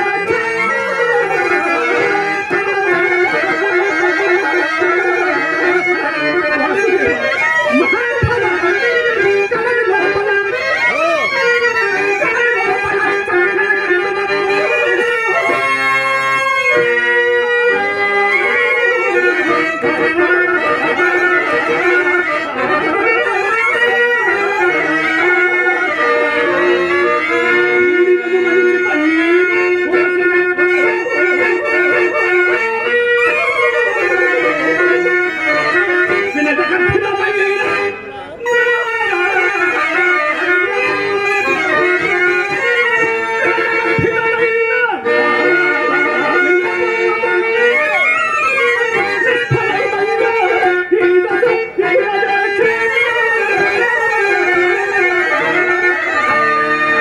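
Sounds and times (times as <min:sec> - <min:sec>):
harmonium accompaniment: 0:00.0 - 0:57.0.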